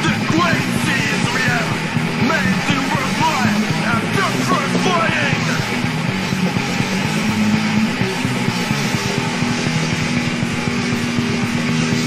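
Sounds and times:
distorted electric guitar riff: 0:00.0 - 0:12.0
drums: 0:00.0 - 0:12.0.

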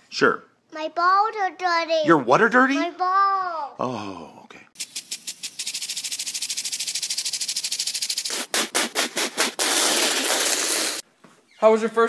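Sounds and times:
impact lawn sprinkler ticking: 0:04.8 - 0:11.0.

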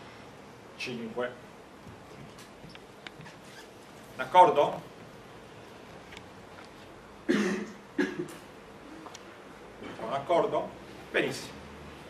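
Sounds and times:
person coughing: 0:07.3 - 0:08.4.

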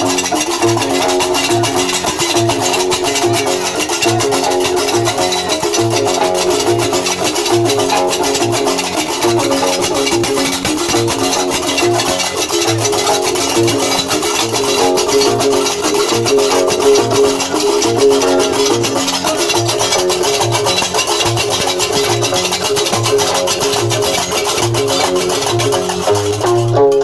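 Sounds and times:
iron castanets clattering: 0:00.0 - 0:27.0
plucked bass lute: 0:00.0 - 0:27.0.

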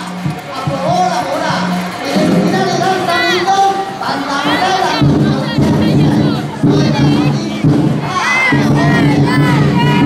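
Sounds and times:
children shouting together: 0:02.7 - 0:10.0.

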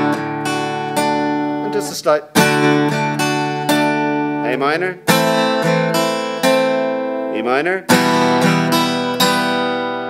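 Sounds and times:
acoustic guitar strums: 0:00.0 - 0:10.0.

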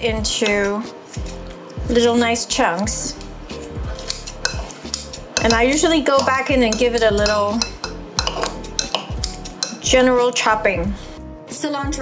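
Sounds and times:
metal tongs clicking on bowl: 0:00.4 - 0:00.8, 0:02.6 - 0:03.3, 0:04.0 - 0:09.9
scissors snipping meat: 0:02.6 - 0:09.8.

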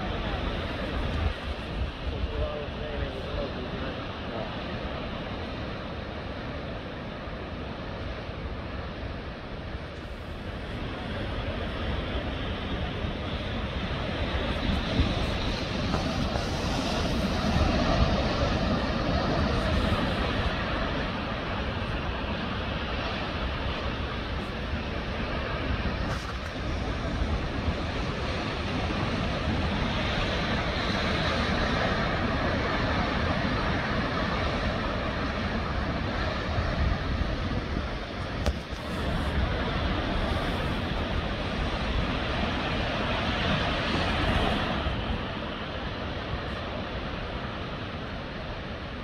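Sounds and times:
surf breaking over rocks: 0:10.5 - 0:48.4.

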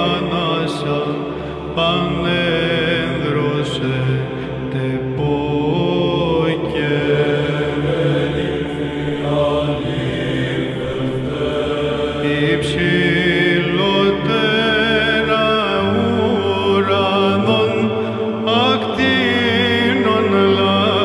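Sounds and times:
low held drone: 0:00.0 - 0:21.0
person chanting slow melody: 0:00.0 - 0:21.0.

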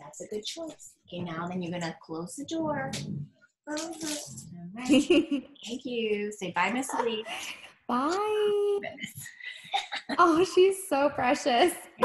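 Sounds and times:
girl saying bye: 0:02.6 - 0:03.1.

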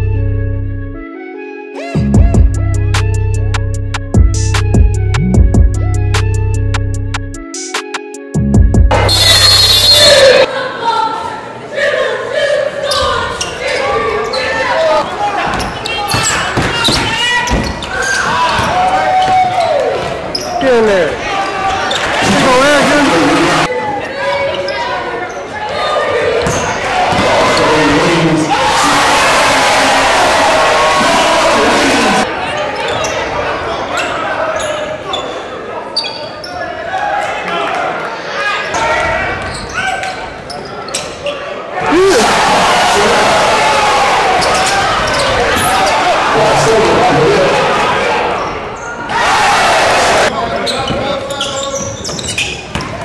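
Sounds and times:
crowd noise: 0:08.9 - 0:53.0
voices of players and spectators: 0:08.9 - 0:53.0.

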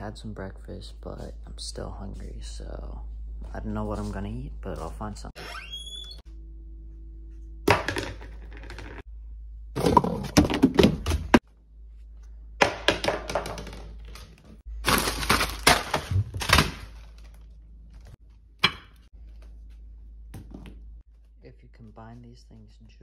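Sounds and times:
food packaging crackling: 0:14.7 - 0:18.2.

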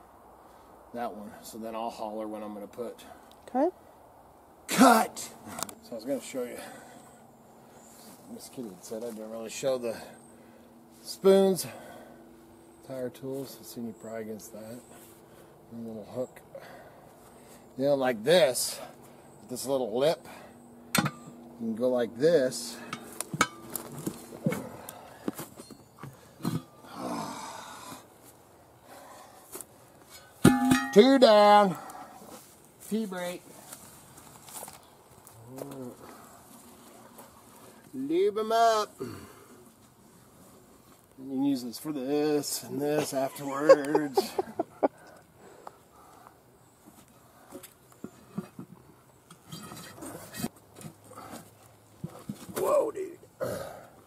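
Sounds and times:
person grunting with effort: 0:26.9 - 0:28.0, 0:53.4 - 0:53.8.

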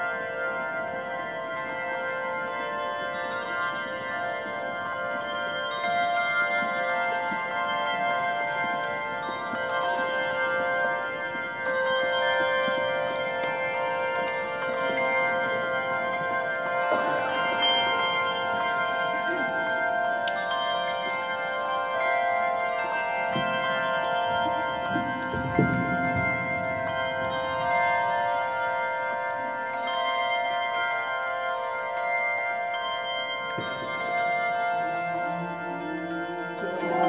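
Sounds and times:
handbells ringing: 0:00.0 - 0:37.0.

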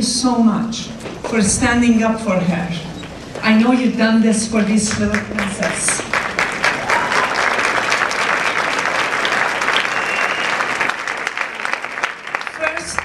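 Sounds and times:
audience applauding: 0:05.0 - 0:13.0.

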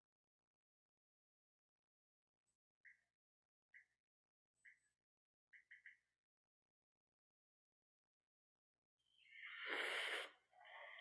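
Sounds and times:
person exhaling into microphone: 0:09.3 - 0:11.0.

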